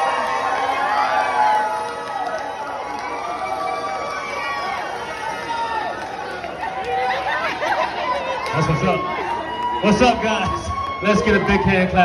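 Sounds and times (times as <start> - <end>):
people clapping: 0.0 - 11.6
crowd cheering and talking: 0.0 - 12.0.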